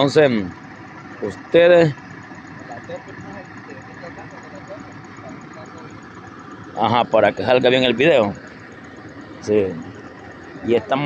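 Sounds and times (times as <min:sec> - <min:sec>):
steady background rumble: 0:00.0 - 0:11.0
distant people talking: 0:01.2 - 0:08.6.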